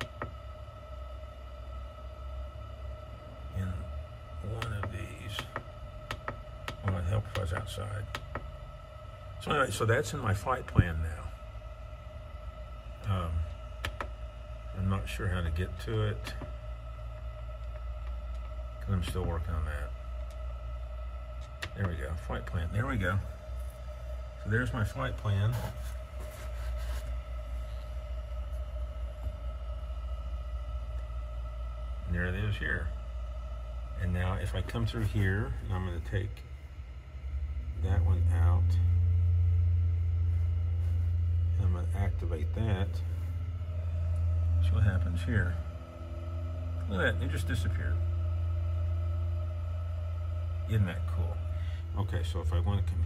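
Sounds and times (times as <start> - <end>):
electrical whine: 0.0 - 53.0
low hum: 0.0 - 53.0.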